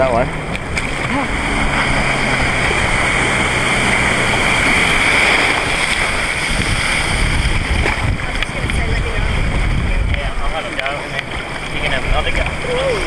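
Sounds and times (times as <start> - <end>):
faint engine drone: 0.0 - 13.0
water rushing and spraying: 0.0 - 13.0
wind noise on microphone: 0.0 - 13.0.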